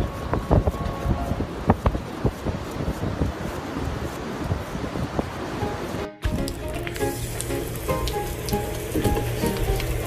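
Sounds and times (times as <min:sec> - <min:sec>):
background music: 0:05.6 - 0:10.0
hose water splattering on deck: 0:06.2 - 0:10.0.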